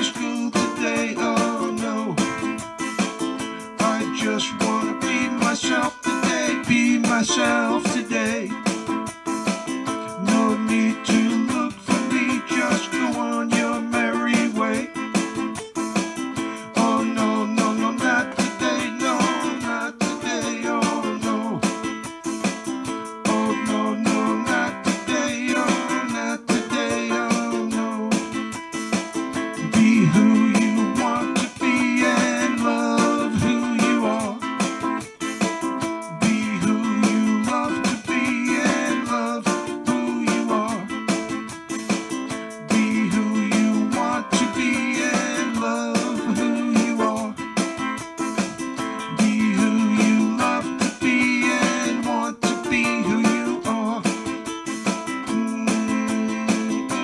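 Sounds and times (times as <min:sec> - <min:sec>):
plucked string instrument playing: 0:00.0 - 0:57.0.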